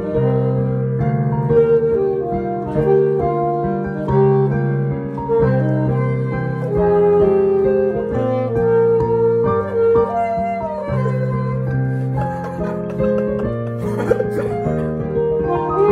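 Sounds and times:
alto saxophone melody: 0.0s - 15.9s
piano chords: 0.0s - 15.9s.

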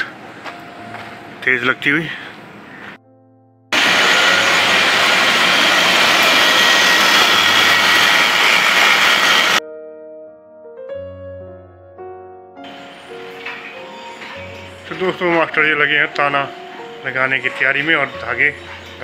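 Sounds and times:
soft background music: 0.0s - 3.8s, 9.6s - 19.0s
thread-winding machine running: 3.8s - 9.6s.

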